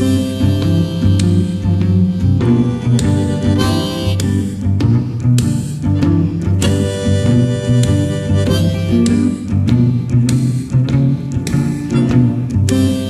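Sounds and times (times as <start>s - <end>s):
blues guitar: 0.0s - 13.0s
long held notes: 0.0s - 13.0s
steady bass line: 0.0s - 13.0s.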